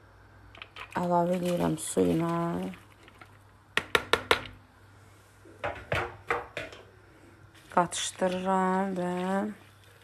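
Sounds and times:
spoon knocking against pot: 3.8s - 4.6s.

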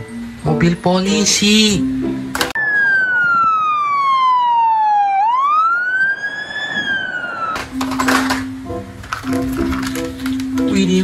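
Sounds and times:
music: 0.0s - 2.6s, 7.7s - 11.0s
police siren wailing: 2.5s - 8.2s.

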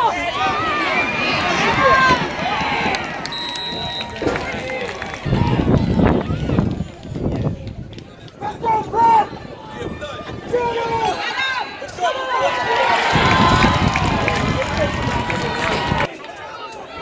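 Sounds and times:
referee whistle blast: 3.3s - 4.3s.

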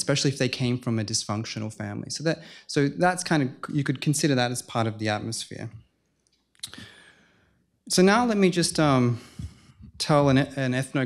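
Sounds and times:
man speaking: 0.0s - 5.8s, 6.6s - 6.9s, 7.9s - 11.0s
soft intake of breath: 2.4s - 2.7s, 6.7s - 7.7s, 9.1s - 9.9s
man's mouth click: 6.2s - 6.8s.

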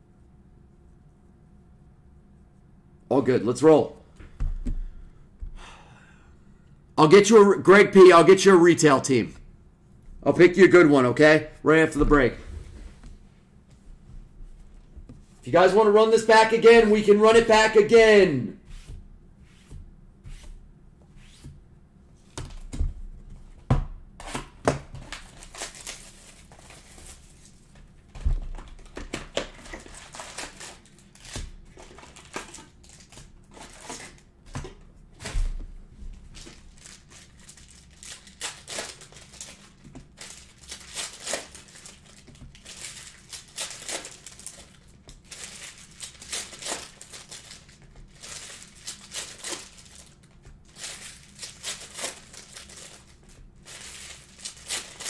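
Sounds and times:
foil wrappers crinkling and tearing: 25.0s - 27.7s, 28.5s - 34.3s, 36.4s - 55.0s.

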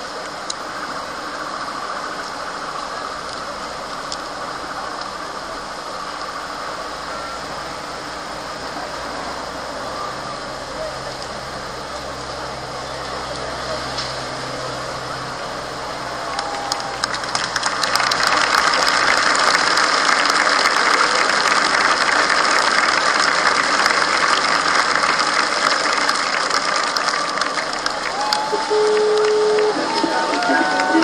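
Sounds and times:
crowd cheering and shouting: 5.5s - 31.0s.

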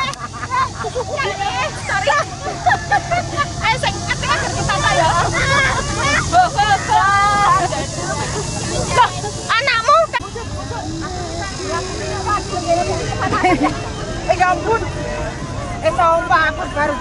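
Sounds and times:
people talking over one another: 0.0s - 17.0s.

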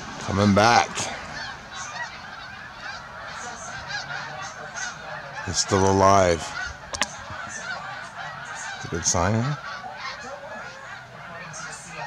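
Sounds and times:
geese honking: 0.0s - 12.0s.

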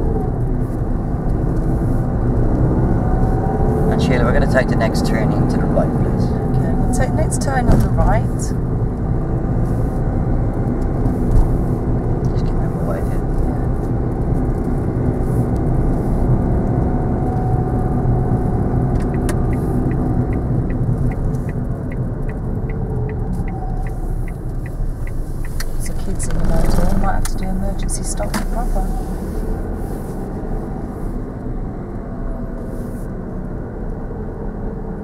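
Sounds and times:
car engine and road noise: 0.0s - 35.0s
turn indicator ticking: 10.1s - 29.6s.

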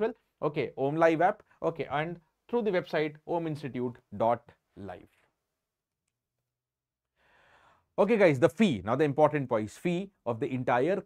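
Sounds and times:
man's faint intake of breath: 7.2s - 7.9s.

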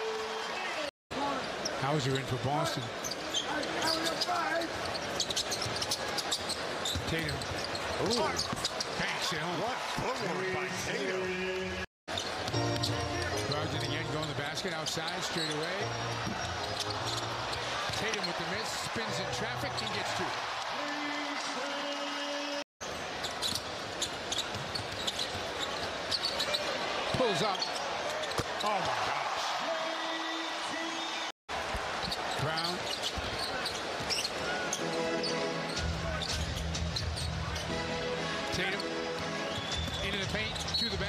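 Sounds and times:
arena crowd noise: 0.0s - 41.0s
sneakers squeaking: 2.8s - 9.0s, 12.1s - 20.6s, 22.8s - 29.0s, 31.9s - 37.8s, 38.6s - 41.0s.

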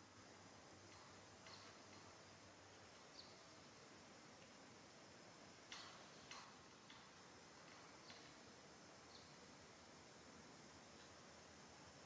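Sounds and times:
faint steady hiss: 0.0s - 12.0s
faint ticks: 0.2s - 9.8s, 10.7s - 12.0s.

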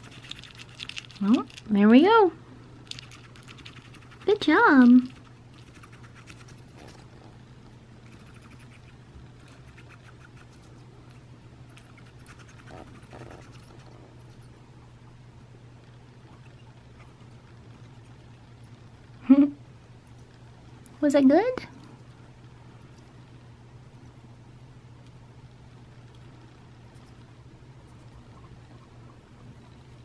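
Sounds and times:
hedgehog licking and chewing: 0.0s - 1.8s, 2.8s - 7.2s, 8.0s - 14.5s
low steady hum: 0.0s - 30.0s.

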